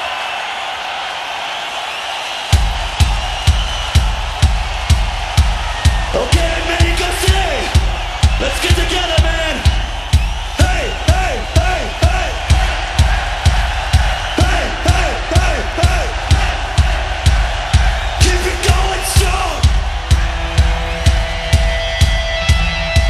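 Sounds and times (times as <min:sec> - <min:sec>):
crowd shouting and whooping: 0:00.0 - 0:23.0
bass drum beat: 0:02.5 - 0:23.0.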